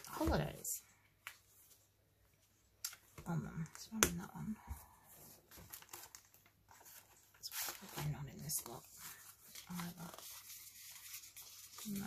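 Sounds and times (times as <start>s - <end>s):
paper sheets rustling: 5.3s - 12.0s.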